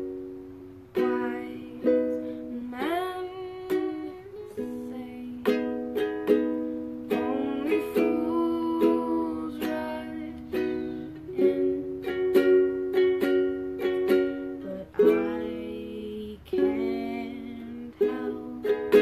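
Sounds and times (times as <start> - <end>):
ukulele strumming chords: 0.0 - 19.0
woman singing: 0.8 - 13.1, 13.7 - 19.0.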